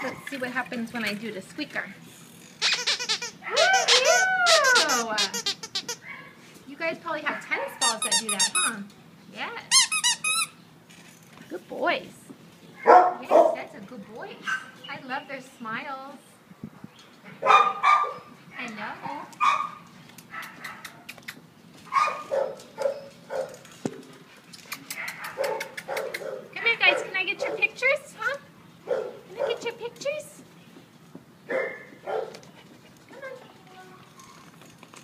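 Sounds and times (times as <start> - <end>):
dog toy squeaking: 2.6 - 6.0, 7.8 - 8.8, 9.7 - 10.6.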